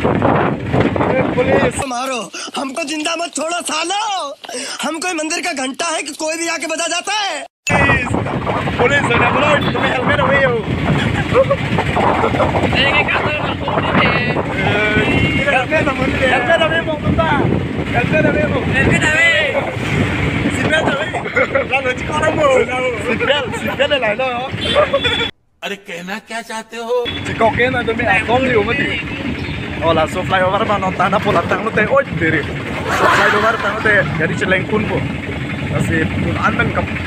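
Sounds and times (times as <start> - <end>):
truck engine and road noise: 0.0 - 1.9, 7.7 - 25.4, 27.1 - 37.0
men talking and laughing: 0.8 - 5.7, 7.8 - 25.4, 27.2 - 37.0
man talking: 1.1 - 8.2, 8.8 - 10.7, 25.6 - 29.2, 29.8 - 35.1.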